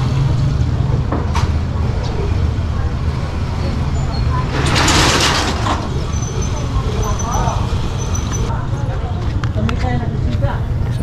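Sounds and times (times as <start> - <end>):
faint voices of passers-by: 0.0 - 11.0
low street rumble: 0.0 - 11.0.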